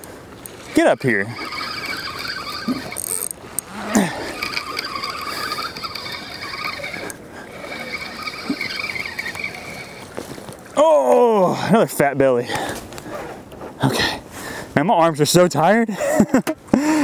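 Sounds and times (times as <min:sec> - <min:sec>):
fishing reel whirring and squealing: 0:00.4 - 0:10.6.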